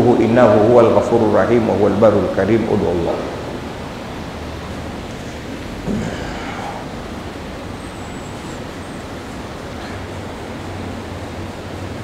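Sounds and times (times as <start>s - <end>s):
room noise hiss: 0.0s - 12.0s.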